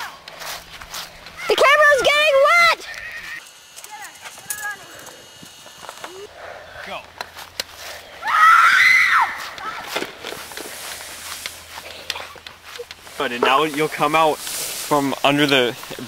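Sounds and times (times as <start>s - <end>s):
young person yelling: 1.4s - 4.9s, 8.2s - 10.0s.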